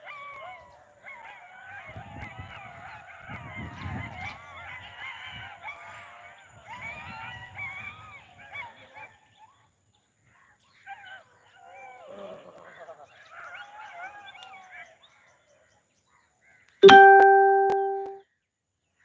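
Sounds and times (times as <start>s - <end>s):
flock of birds calling: 0.0s - 9.5s.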